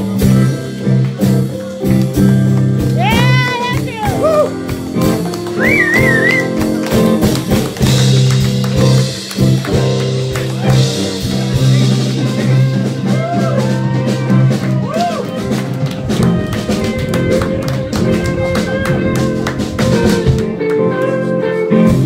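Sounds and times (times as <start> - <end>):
bent guitar notes: 0.0 - 22.0
live blues band playing: 0.0 - 22.0.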